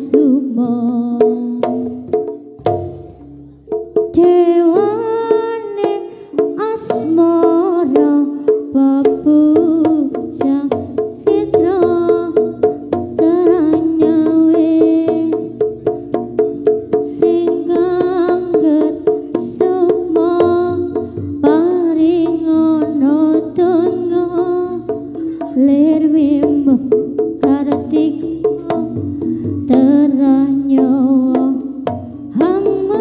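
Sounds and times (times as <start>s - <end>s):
drum strokes: 0.0s - 33.0s
struck metal tones: 1.3s - 33.0s.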